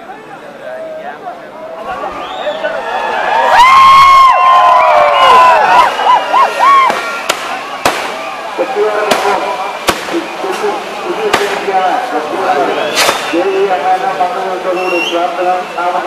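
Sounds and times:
fireworks hiss and crackle: 0:05.6 - 0:14.2
sharp firework bangs: 0:06.8 - 0:08.4, 0:09.0 - 0:11.8, 0:12.9 - 0:13.4.

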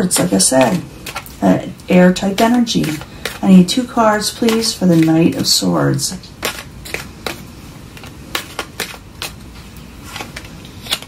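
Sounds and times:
cards shuffling and snapping: 0:00.2 - 0:01.4, 0:02.2 - 0:03.5, 0:04.1 - 0:05.4, 0:06.3 - 0:09.4, 0:10.1 - 0:11.0.

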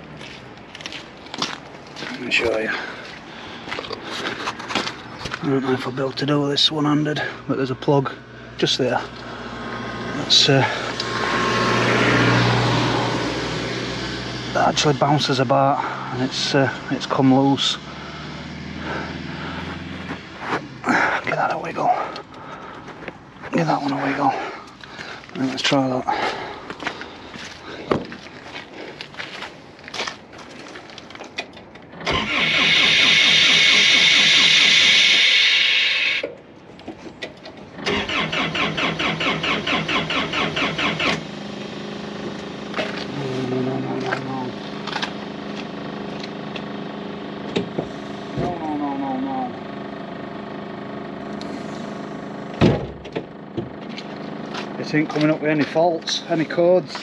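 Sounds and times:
diesel engine cranking and idling: 0:00.0 - 0:57.0
loud harsh noise: 0:32.1 - 0:36.2.

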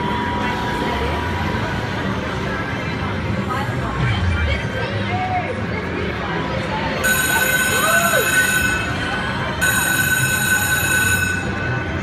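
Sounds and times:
low casino floor din: 0:00.0 - 0:12.0
slot machine jackpot ringing: 0:07.0 - 0:12.0.

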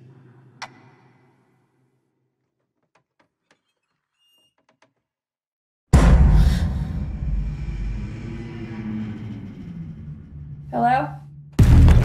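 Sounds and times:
deep trailer impact hit: 0:05.9 - 0:09.0, 0:11.6 - 0:12.0
low rumbling drone: 0:06.0 - 0:12.0.

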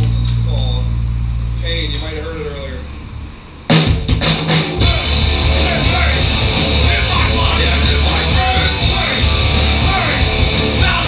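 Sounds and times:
low amplifier hum: 0:00.0 - 0:11.0
live punk rock band: 0:03.7 - 0:11.0.

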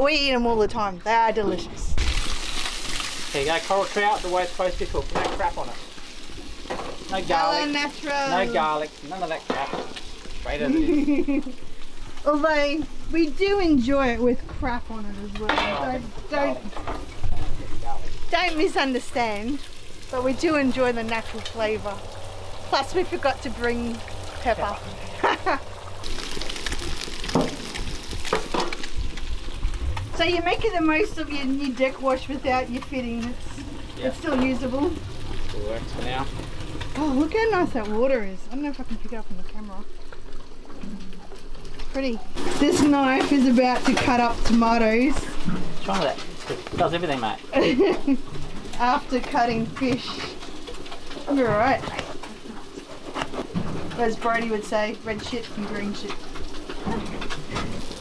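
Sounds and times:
fish sizzling in frying pan: 0:02.0 - 0:58.0.

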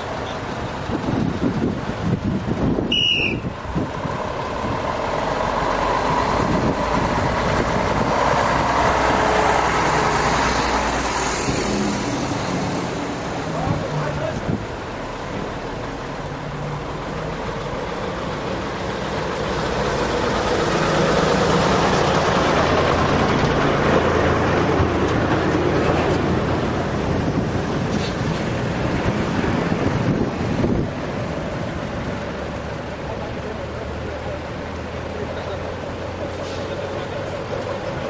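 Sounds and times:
truck engines in heavy traffic: 0:00.0 - 0:38.0.

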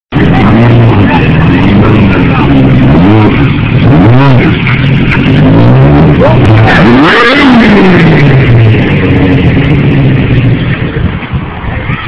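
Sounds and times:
motorcycle engine revving: 0:00.1 - 0:11.3.

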